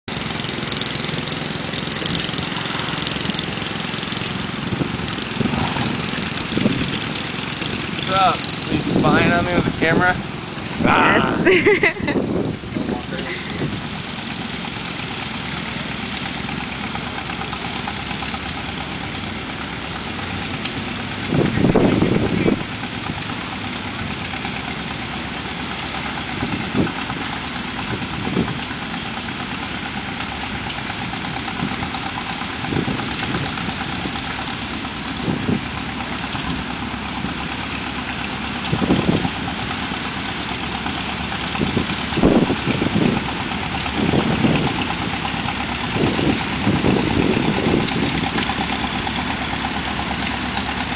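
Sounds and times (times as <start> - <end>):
small tractor engines running: 0.0 - 50.9.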